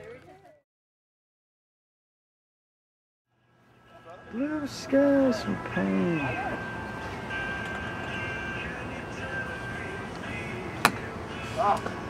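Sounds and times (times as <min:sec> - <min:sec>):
golf club striking ball: 0:10.8 - 0:11.1.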